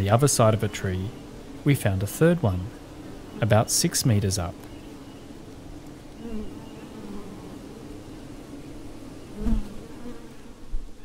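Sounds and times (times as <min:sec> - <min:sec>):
bees buzzing: 0:00.0 - 0:11.0.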